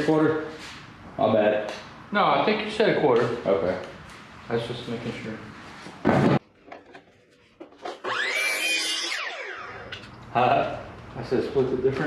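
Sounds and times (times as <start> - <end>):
miter saw motor whine: 8.0 - 10.1.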